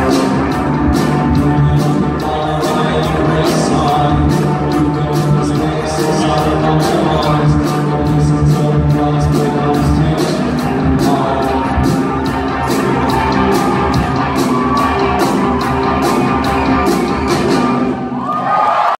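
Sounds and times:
rock band playing live: 0:00.0 - 0:18.2.

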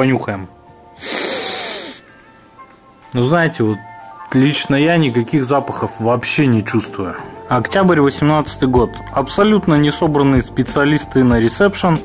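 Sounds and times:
loud nose sniff: 0:01.0 - 0:02.2.

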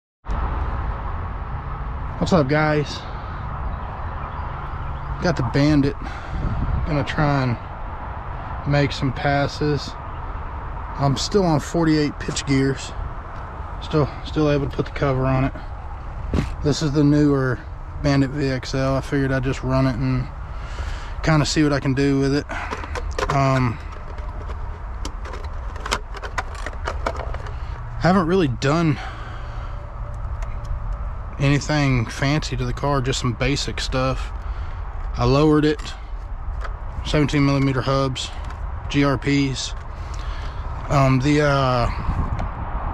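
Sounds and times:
low outdoor rumble: 0:00.3 - 0:42.9.

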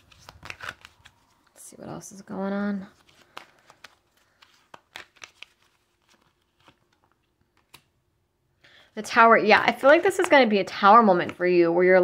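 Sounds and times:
cards shuffling: 0:00.0 - 0:01.6, 0:02.8 - 0:07.9.

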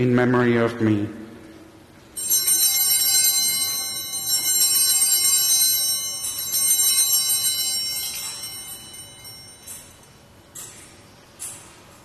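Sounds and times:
hand-held bells ringing: 0:02.1 - 0:11.6.

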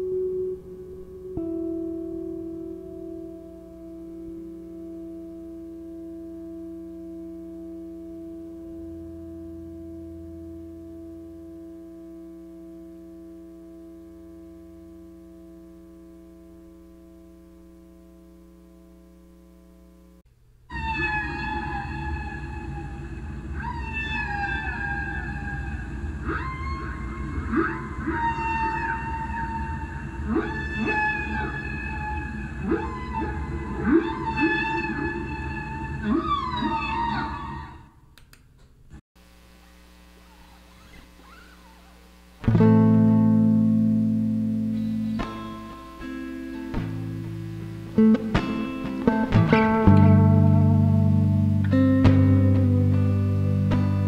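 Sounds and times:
electric guitar drone: 0:00.0 - 0:20.1, 0:20.7 - 0:37.9, 0:40.1 - 0:54.0
low drone: 0:20.8 - 0:37.9
deeper low guitar note: 0:42.4 - 0:54.0.

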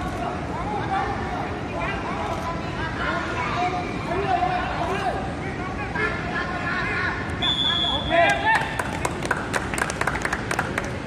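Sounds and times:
steady high whistle-like tone: 0:07.4 - 0:08.2
hand claps: 0:08.3 - 0:11.0.

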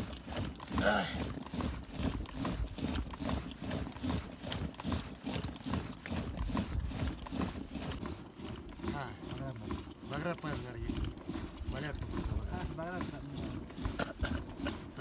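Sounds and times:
man talking low and indistinct: 0:11.7 - 0:13.6.

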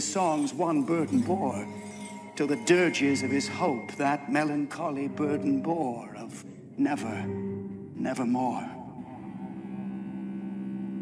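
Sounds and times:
low droning musical tone: 0:00.0 - 0:11.0.

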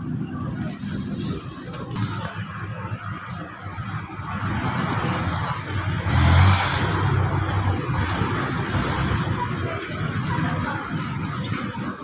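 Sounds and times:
car passing by: 0:04.4 - 0:09.4.

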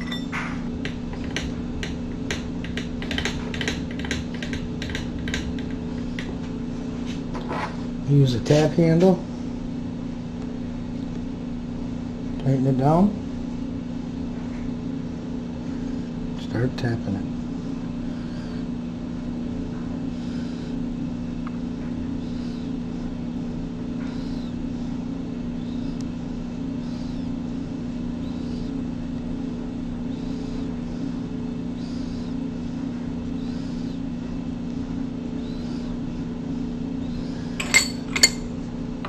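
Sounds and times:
sharp metallic clinks: 0:00.0 - 0:00.4, 0:37.6 - 0:38.4
steady machine hum: 0:00.0 - 0:39.0
tap creaking as it cuts: 0:00.8 - 0:06.4.

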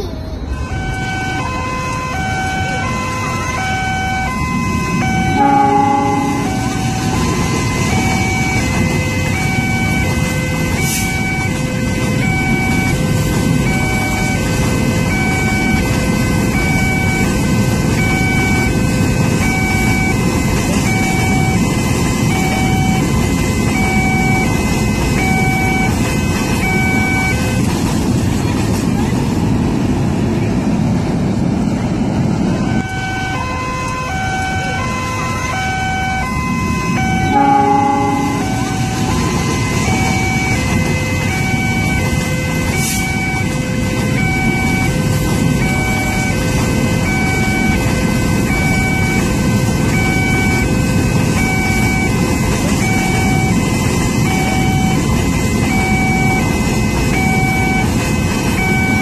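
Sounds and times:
train rumbling past: 0:00.0 - 0:59.0
train horn blast: 0:00.5 - 0:08.0, 0:08.8 - 0:12.6, 0:32.6 - 0:49.8
two-pitch electronic warning tone: 0:00.6 - 0:27.7, 0:32.6 - 0:59.0.

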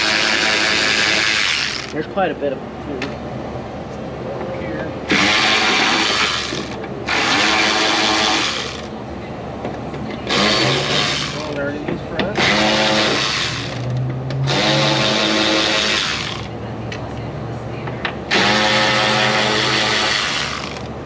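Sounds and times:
power drill spinning out screws: 0:18.3 - 0:20.9.

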